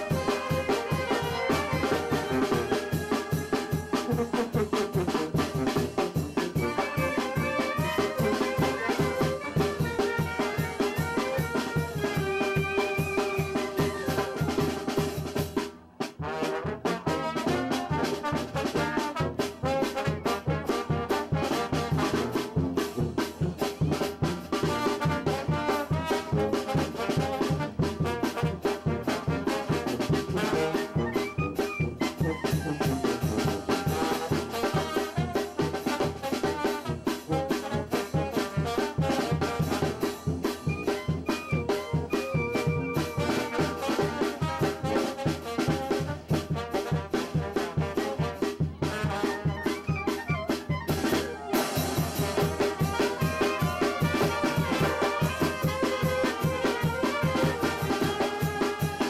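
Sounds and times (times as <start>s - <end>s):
brass band dance music: 0.0s - 59.0s.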